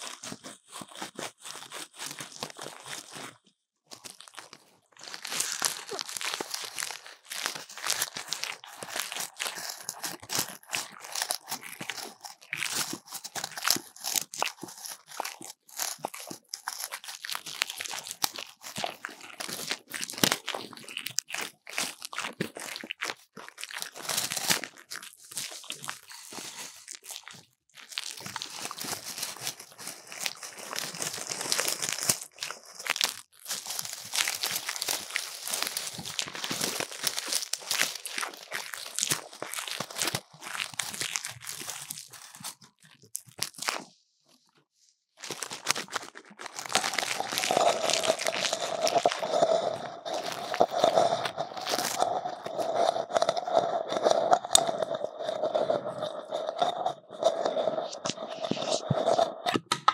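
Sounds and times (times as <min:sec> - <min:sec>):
crinkling of grass and tinsel: 0:04.0 - 0:22.9, 0:23.9 - 0:43.8, 0:45.2 - 0:54.2.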